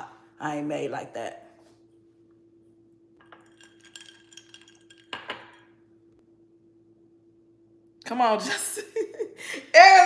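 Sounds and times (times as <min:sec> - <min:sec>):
low hum: 0:00.0 - 0:08.0.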